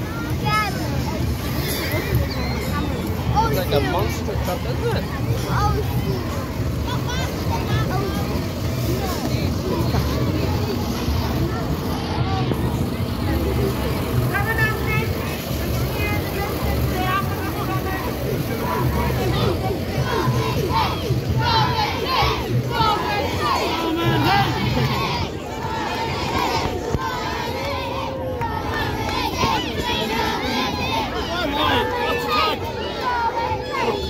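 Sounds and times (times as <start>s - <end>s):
crowd voices: 0.0s - 34.0s
children shouting: 17.8s - 34.0s.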